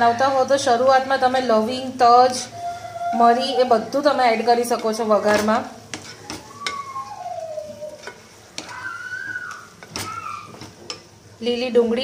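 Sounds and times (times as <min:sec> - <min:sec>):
light sizzle: 0:00.0 - 0:12.0
spatula squeaking on pan: 0:02.3 - 0:11.1
spatula stirring vegetables: 0:03.2 - 0:12.0
spatula knocking against pan: 0:08.0 - 0:08.8.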